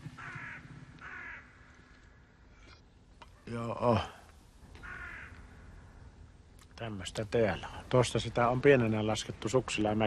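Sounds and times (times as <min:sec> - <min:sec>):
crow cawing: 0:00.0 - 0:02.4, 0:04.7 - 0:06.1.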